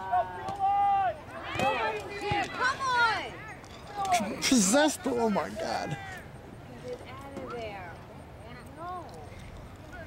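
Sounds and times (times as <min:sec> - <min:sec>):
distant people shouting and calling: 0:00.0 - 0:10.0
low outdoor background: 0:00.0 - 0:10.0.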